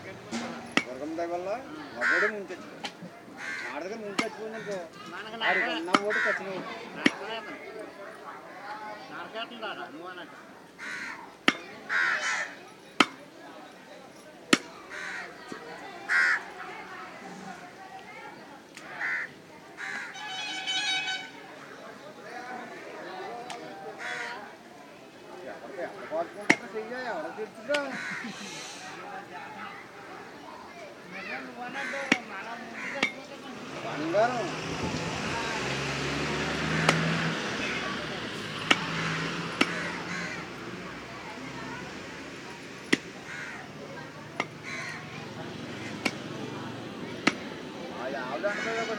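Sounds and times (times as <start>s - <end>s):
cleaver chopping into wooden block: 38.6s - 39.9s, 47.2s - 47.5s.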